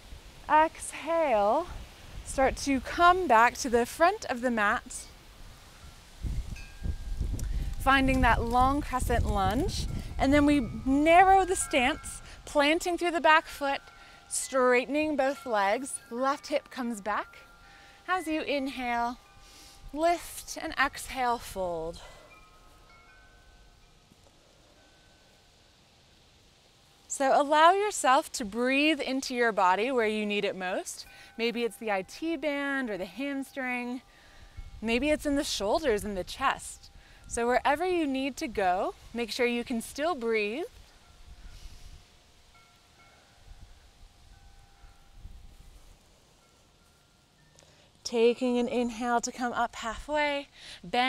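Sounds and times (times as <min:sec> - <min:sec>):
wind rumble on microphone: 0:01.6 - 0:13.7, 0:33.7 - 0:42.2, 0:43.4 - 0:46.0
wind chimes ringing: 0:04.6 - 0:49.5.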